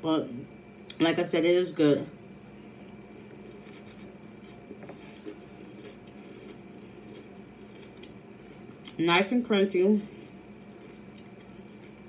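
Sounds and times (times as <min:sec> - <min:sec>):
low steady hum: 0:00.0 - 0:12.0
chewing crunchy cereal: 0:03.1 - 0:09.0, 0:10.0 - 0:12.0.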